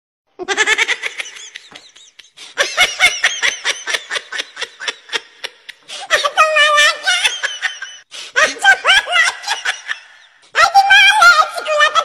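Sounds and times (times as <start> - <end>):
person laughing hard: 0.4 - 10.4.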